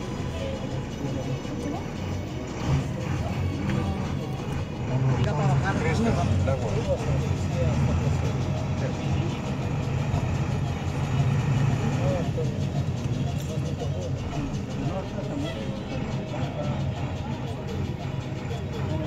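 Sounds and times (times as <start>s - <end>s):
vehicle engine humming: 0.0s - 19.0s
voices: 0.0s - 19.0s.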